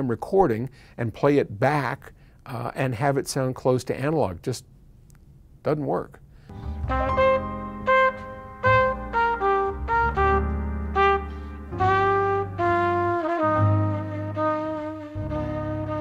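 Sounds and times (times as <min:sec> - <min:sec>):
low bass line: 0:06.5 - 0:16.0
trumpet melody: 0:06.5 - 0:16.0.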